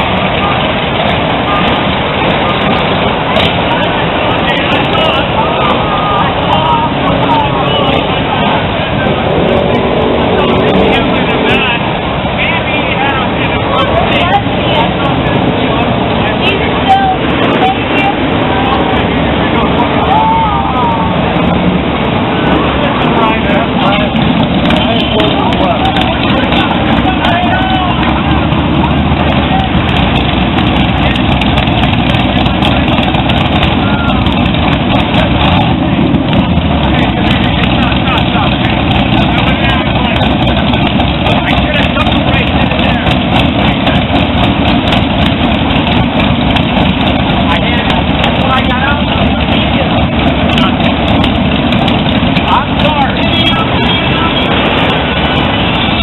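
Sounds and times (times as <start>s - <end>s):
crowd voices: 0.0s - 56.0s
motorcycles and traffic: 0.0s - 56.0s.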